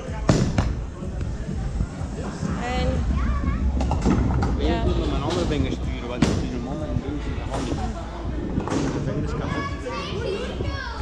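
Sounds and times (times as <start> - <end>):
bowling ball rolling rumble: 2.2 - 9.3.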